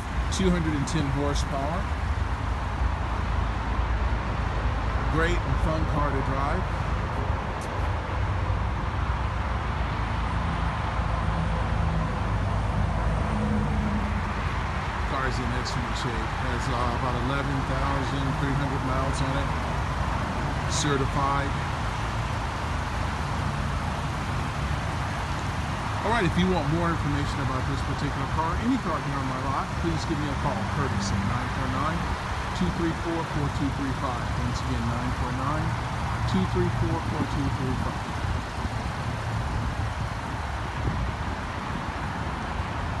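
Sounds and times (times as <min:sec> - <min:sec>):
low rumble and hiss: 0:00.0 - 0:43.0
wind buffeting microphone: 0:36.8 - 0:43.0.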